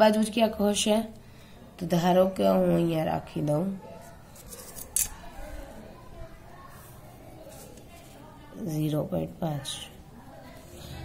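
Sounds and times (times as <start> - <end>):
pencil scratching on paper: 6.7 - 8.2.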